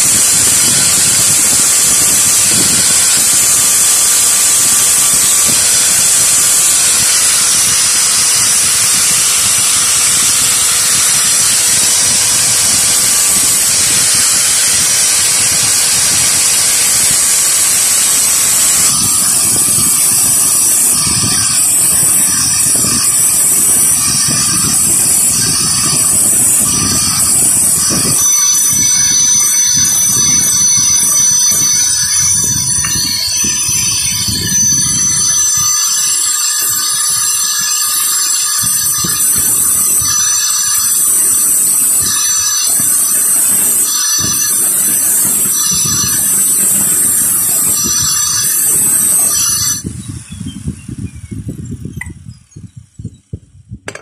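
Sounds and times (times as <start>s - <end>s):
angle grinder grinding steel: 0.0s - 50.9s
grinder running with high whine: 0.0s - 54.0s.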